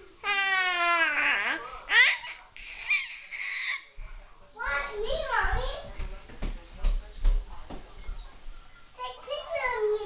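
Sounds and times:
baby squealing: 0.2 - 3.9.

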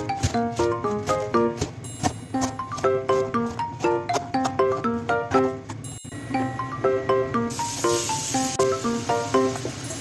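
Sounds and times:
staccato background music: 0.0 - 5.9.

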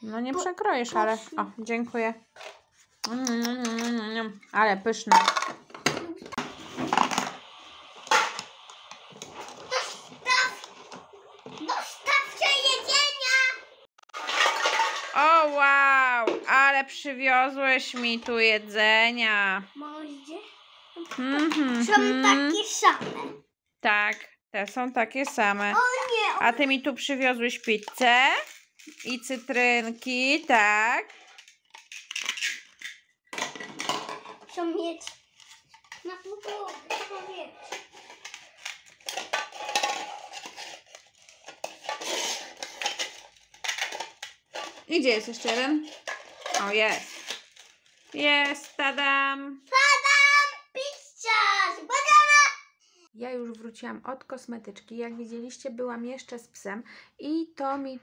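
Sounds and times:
plastic toys scraping and clattering: 0.4 - 19.3, 24.6 - 51.0.

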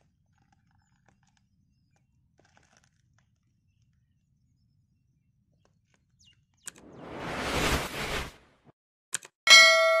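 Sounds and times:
whoosh: 6.7 - 8.7
notification bell ding: 9.5 - 10.0.

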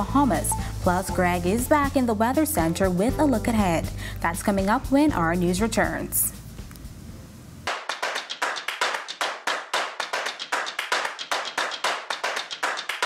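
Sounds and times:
fast sharp claps: 7.7 - 13.0.

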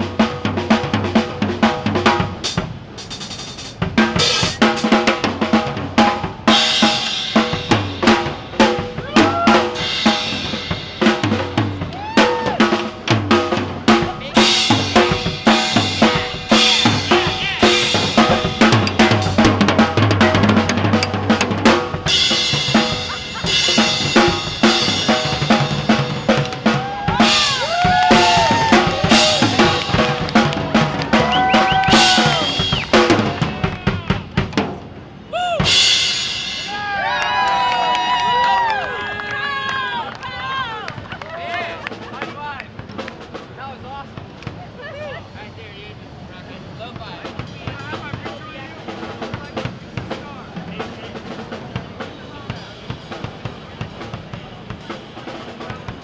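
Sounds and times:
drum kit solo: 0.0 - 37.0, 47.2 - 56.0
people whooping and cheering: 8.9 - 9.8, 11.8 - 12.8, 26.6 - 34.2, 35.3 - 35.8, 36.6 - 42.0
people clapping: 27.4 - 34.0, 37.0 - 43.2.

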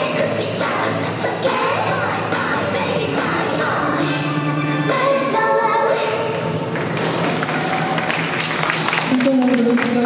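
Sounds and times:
figure skating program music: 0.0 - 7.2
applause with sharp claps: 6.8 - 10.0.

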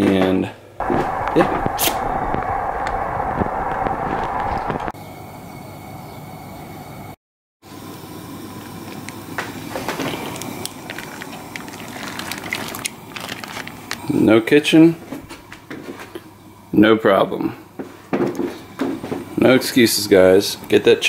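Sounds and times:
camp stove burner hissing: 0.8 - 6.0, 7.7 - 14.2.

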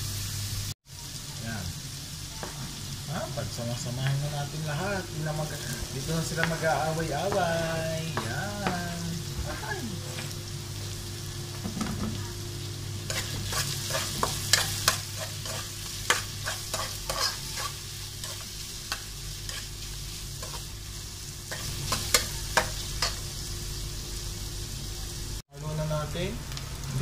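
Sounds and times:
food sizzling in oil: 0.0 - 27.0
metal spoon scraping wok: 13.1 - 19.7.

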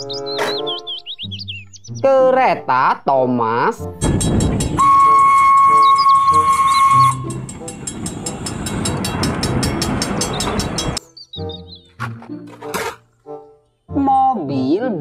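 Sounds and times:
crossing bell ringing: 4.0 - 11.0
train rumbling past: 4.0 - 11.0
locomotive whistle blast: 4.7 - 7.6.

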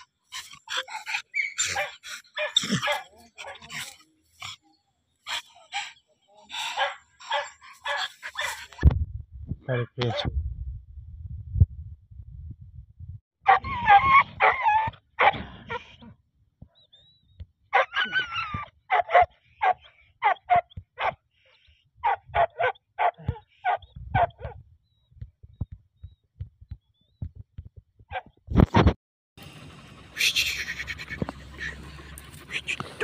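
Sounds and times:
dog whining and yelping: 0.0 - 4.6, 7.2 - 8.8, 13.5 - 15.3, 17.8 - 21.2
dog barking: 1.6 - 3.8, 6.7 - 8.7, 13.5 - 15.8, 17.7 - 18.3, 18.9 - 21.2, 22.0 - 24.6.

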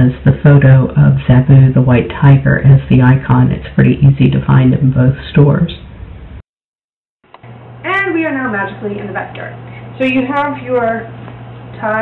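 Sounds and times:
steady low hum: 0.0 - 6.4, 7.3 - 12.0
woman speaking: 7.8 - 12.0.

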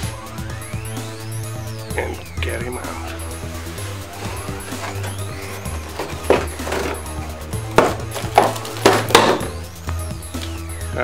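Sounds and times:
background music with bass line: 0.0 - 11.0
plastic packaging crackling: 7.9 - 9.2.

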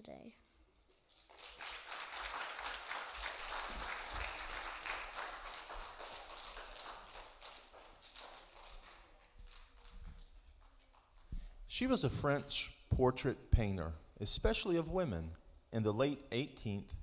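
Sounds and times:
audience applauding: 1.2 - 10.0.

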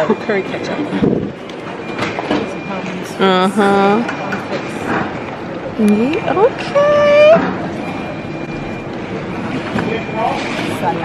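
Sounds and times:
murmur of restaurant crowd: 0.0 - 11.0.

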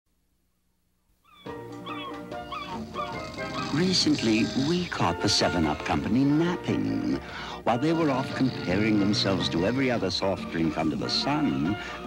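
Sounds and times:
gull cries: 1.2 - 6.0
music of sustained notes: 1.5 - 12.0.

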